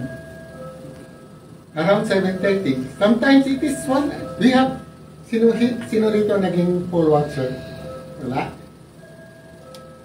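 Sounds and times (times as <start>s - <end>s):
faint hum of held tones: 0.0s - 10.0s.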